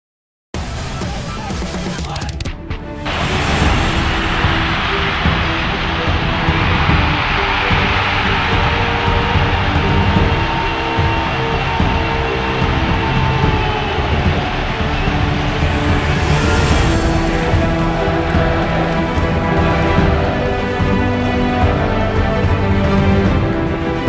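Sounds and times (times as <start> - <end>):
music with long held notes: 0.6 - 24.0
stadium crowd roar: 3.0 - 24.0.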